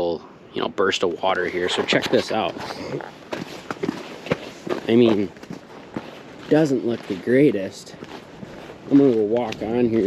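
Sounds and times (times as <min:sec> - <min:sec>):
footsteps walking: 0:01.4 - 0:10.0.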